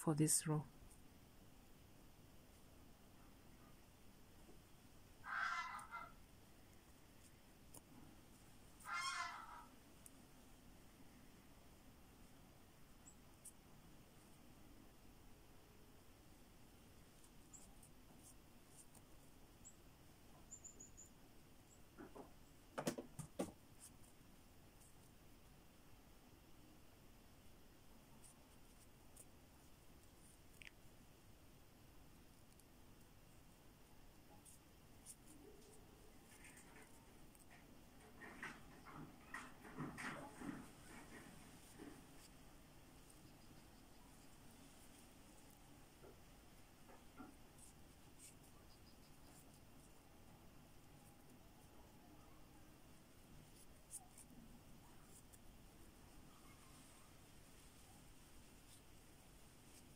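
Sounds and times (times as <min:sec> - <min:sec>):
short animal call: 0:05.2 - 0:06.1, 0:08.8 - 0:09.7
crochet hook scratching cord: 0:05.3 - 0:06.2, 0:06.9 - 0:10.2, 0:17.0 - 0:19.3, 0:22.8 - 0:24.2, 0:28.1 - 0:30.9, 0:34.2 - 0:46.2, 0:46.8 - 0:50.1, 0:53.2 - 0:59.9.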